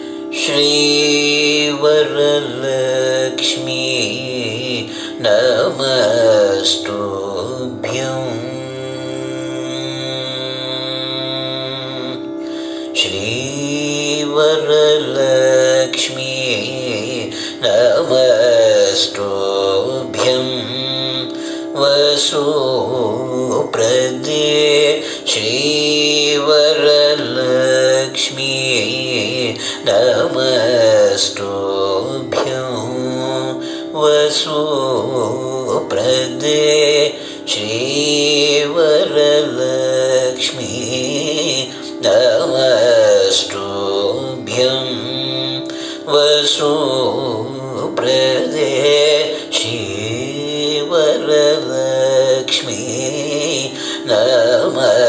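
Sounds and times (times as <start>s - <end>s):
man singing ornamented melody: 0.0s - 55.0s.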